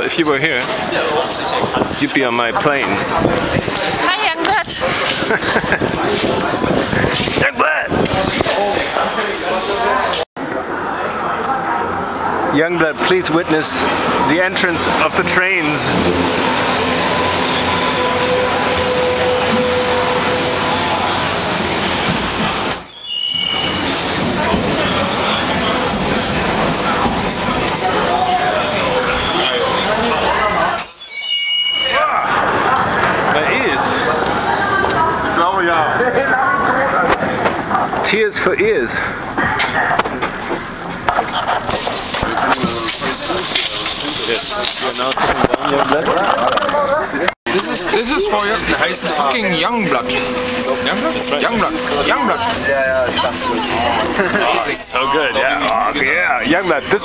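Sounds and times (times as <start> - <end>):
passengers' voices: 0.0 - 31.1, 31.8 - 57.0
train running on rails: 0.0 - 31.7, 39.2 - 46.7, 47.5 - 57.0
wheels squealing: 13.8 - 32.7, 47.5 - 57.0.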